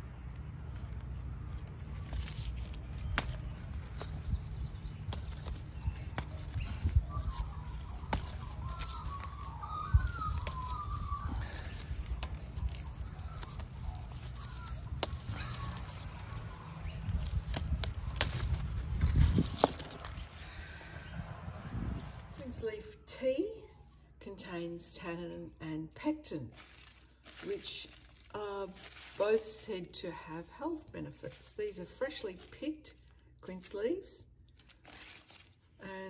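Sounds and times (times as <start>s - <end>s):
leaves rustling and snapping: 0.4s - 20.5s, 26.5s - 30.0s, 34.4s - 35.9s
low rumble: 9.9s - 22.7s.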